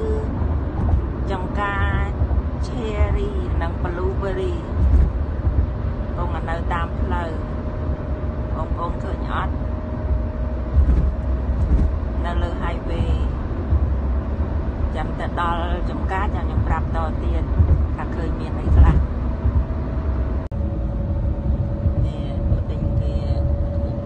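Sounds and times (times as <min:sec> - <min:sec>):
road and engine rumble: 0:00.0 - 0:24.0.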